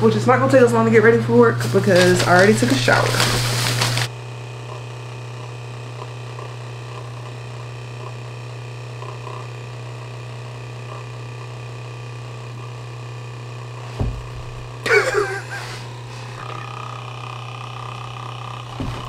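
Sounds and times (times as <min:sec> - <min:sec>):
low electrical hum: 0:00.0 - 0:19.0
low thump: 0:14.0 - 0:14.7, 0:18.8 - 0:19.0.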